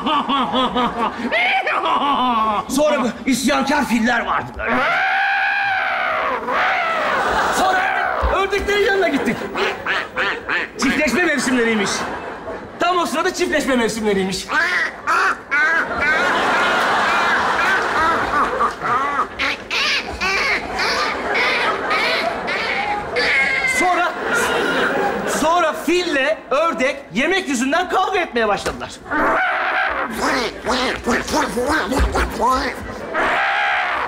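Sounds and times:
people imitating duck quacks: 9.4s - 11.1s, 14.4s - 25.2s, 29.1s - 34.0s.

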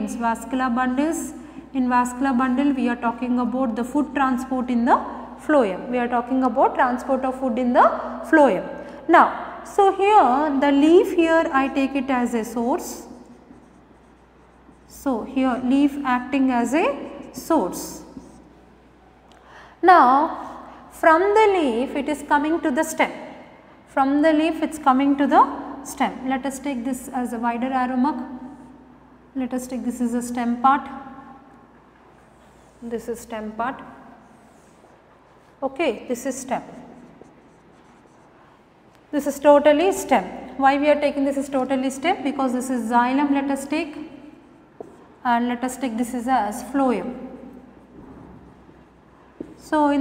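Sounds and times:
marker writing on whiteboard: 11.9s - 16.0s, 31.0s - 35.6s, 36.2s - 39.1s, 43.9s - 45.2s.

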